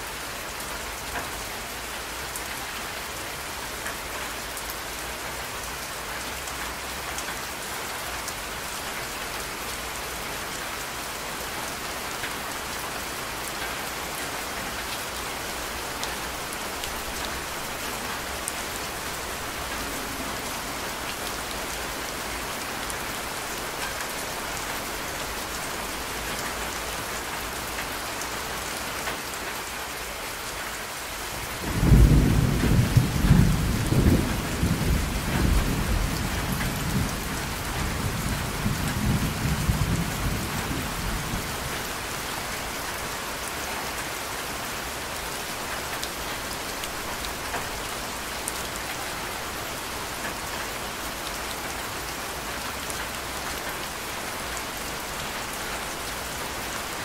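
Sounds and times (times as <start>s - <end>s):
steady rain: 0.0s - 57.0s.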